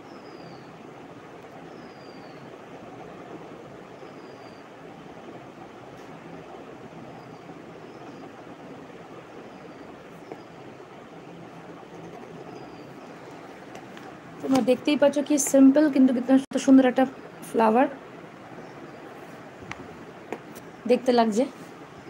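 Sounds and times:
background hiss and rumble: 0:00.0 - 0:22.0
marker nib squeaking on paper: 0:11.9 - 0:13.0.

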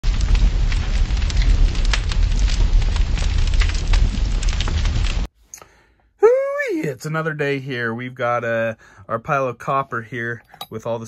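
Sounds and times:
deep rumble: 0:00.0 - 0:05.3
fire crackling: 0:00.0 - 0:05.3.

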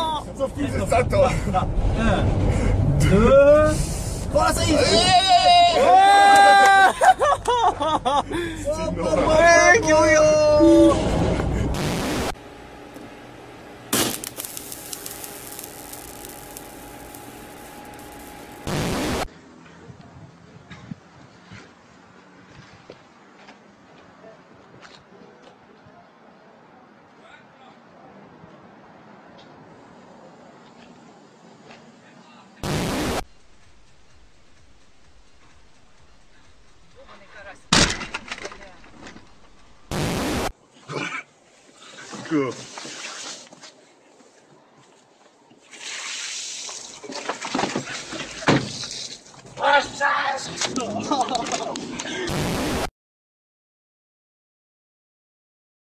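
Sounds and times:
scattered crackles and clicks: 0:11.8 - 0:12.4, 0:13.9 - 0:19.3, 0:32.6 - 0:40.5, 0:50.6 - 0:52.9
faint steady hum: 0:11.8 - 0:19.3
loud crash: 0:13.9 - 0:14.5, 0:37.7 - 0:39.3
loud bang or crash: 0:37.7 - 0:40.5.

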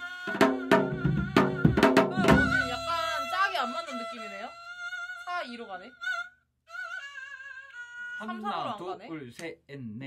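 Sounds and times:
man speaking: 0:08.2 - 0:10.0.

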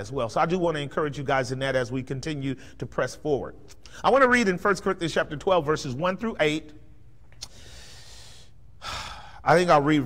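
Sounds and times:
man breathing in: 0:07.4 - 0:09.4.

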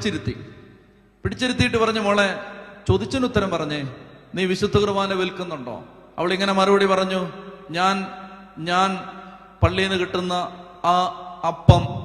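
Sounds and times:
man chanting a prayer: 0:01.3 - 0:12.0.

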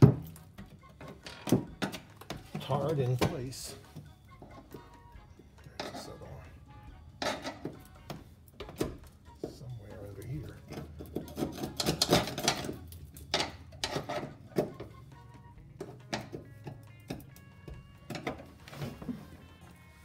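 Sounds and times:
background music: 0:00.0 - 0:20.0
hand tools scraping metal floor: 0:05.6 - 0:06.3, 0:07.2 - 0:08.8, 0:10.5 - 0:14.9, 0:18.1 - 0:19.8.

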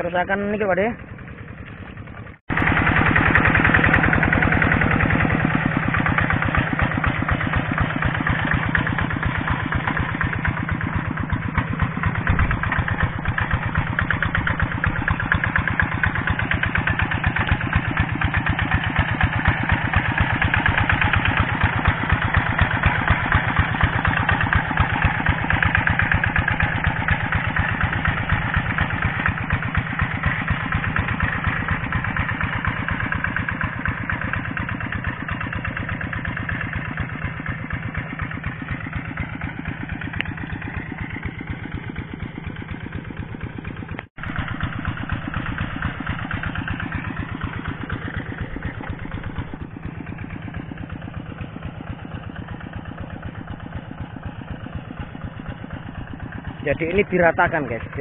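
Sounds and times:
diesel engine running: 0:00.0 - 0:58.0.

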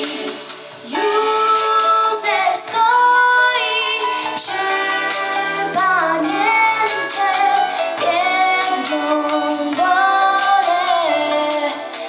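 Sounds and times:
girls choir singing a carol: 0:00.0 - 0:11.8.

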